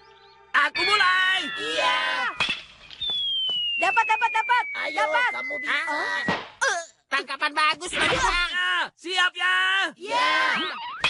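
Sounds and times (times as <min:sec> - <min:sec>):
cartoon descending whistle: 0:00.8 - 0:06.5
cartoon voices calling out: 0:10.0 - 0:10.8.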